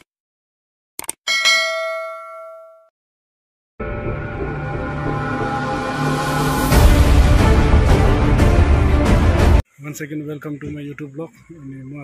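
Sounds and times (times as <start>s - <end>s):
notification bell ding: 1.3s - 2.9s
music: 3.8s - 9.6s.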